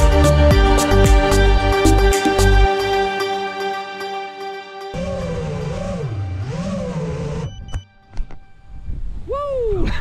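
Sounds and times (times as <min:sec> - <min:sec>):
soft guitar music: 0:00.0 - 0:05.0
quadcopter propellers buzzing: 0:05.0 - 0:07.7.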